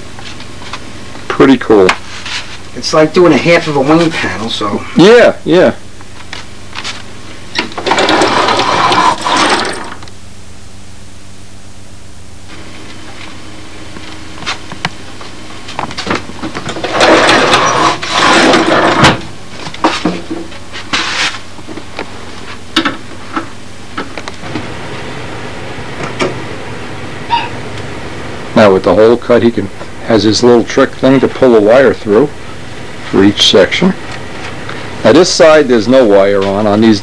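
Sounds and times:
steady low hum: 0:00.0 - 0:37.0
foam rubbing and scraping: 0:16.8 - 0:19.1, 0:19.8 - 0:21.5.

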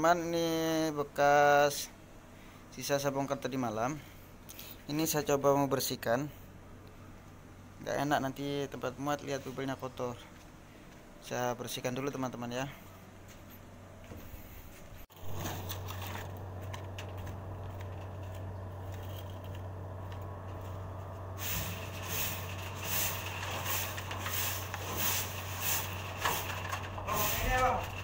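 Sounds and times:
steady low hum: 0:00.0 - 0:28.0
broom sweeping steel floor: 0:20.5 - 0:28.0.

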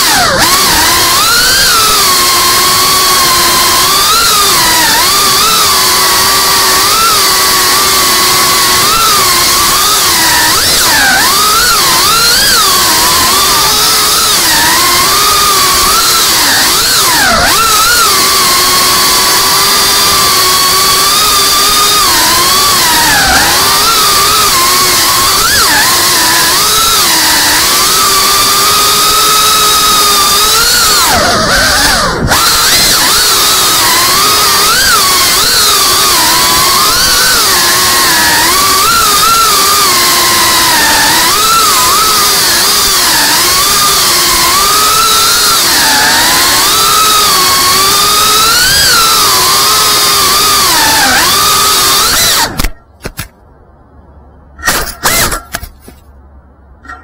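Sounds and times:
drone motors and propellers whining: 0:00.0 - 0:53.3, 0:54.6 - 0:56.0.

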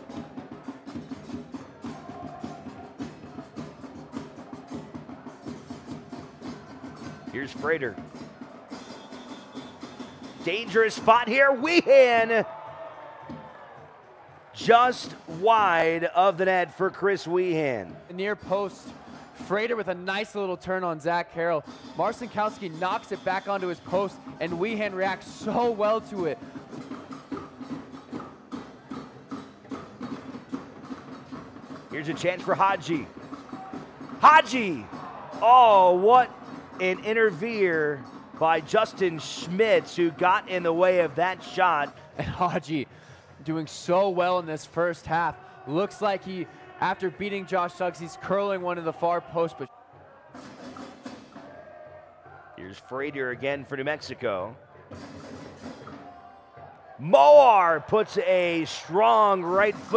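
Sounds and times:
drums beating: 0:00.0 - 0:49.3, 0:54.9 - 0:56.2, 0:57.0 - 0:59.9.

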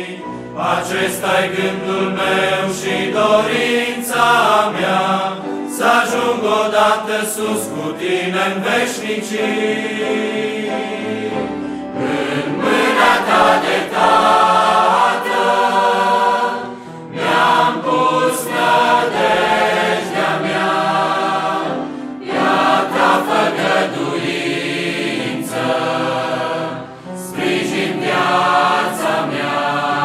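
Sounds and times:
mixed choir singing a hymn: 0:00.0 - 0:30.0.

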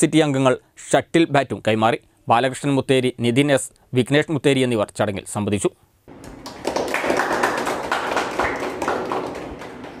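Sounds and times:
people clapping: 0:06.1 - 0:10.0.

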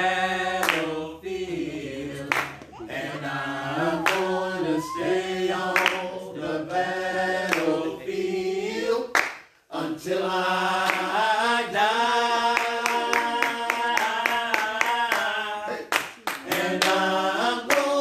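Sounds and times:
group singing worship song: 0:00.0 - 0:18.0.

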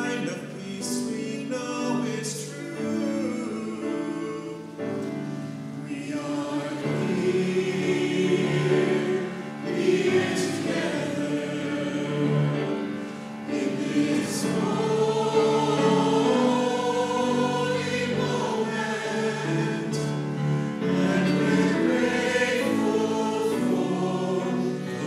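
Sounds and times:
choir singing in church: 0:00.0 - 0:25.0.

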